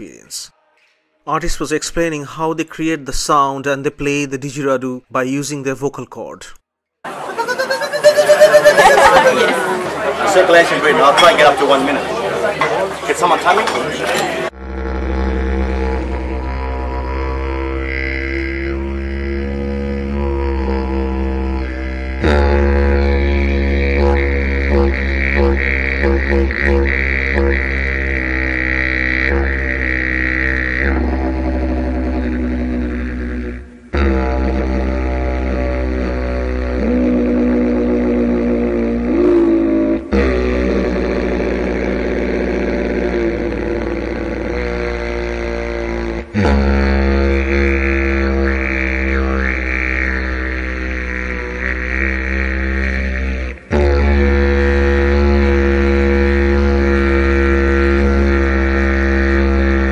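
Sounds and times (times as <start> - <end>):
didgeridoo drone: 14.4 - 59.9.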